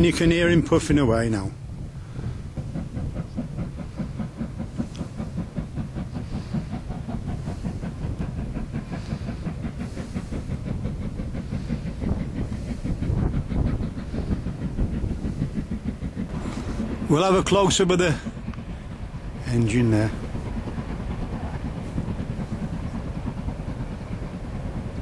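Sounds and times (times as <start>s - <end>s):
steam locomotive puffing: 0.0s - 25.0s.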